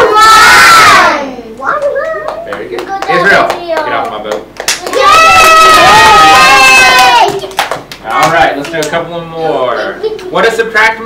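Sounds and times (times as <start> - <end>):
children clapping: 1.7 - 5.6, 6.9 - 9.0.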